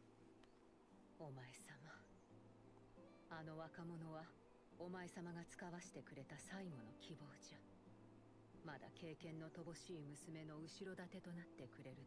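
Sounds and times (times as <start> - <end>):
faint soft voice speaking: 1.2 - 2.1.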